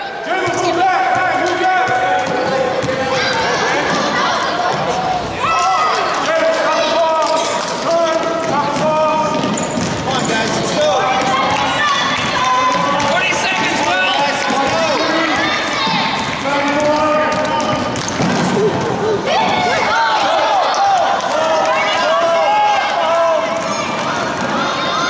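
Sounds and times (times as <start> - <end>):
shouting and chatter: 0.0 - 25.0.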